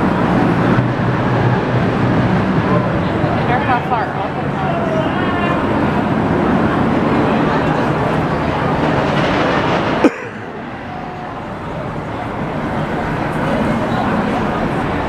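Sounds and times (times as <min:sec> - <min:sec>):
roller coaster train rolling: 0:00.0 - 0:15.0.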